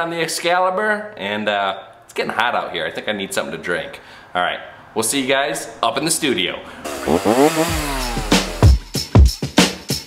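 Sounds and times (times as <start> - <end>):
chainsaw revving: 6.8 - 8.9
music with thumping beat: 7.6 - 10.0.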